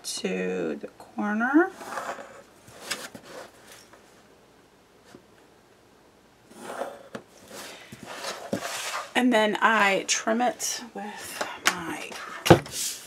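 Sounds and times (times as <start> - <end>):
pencil scratching along ruler: 6.5 - 7.1
cardstock sliding on tabletop: 6.5 - 9.1.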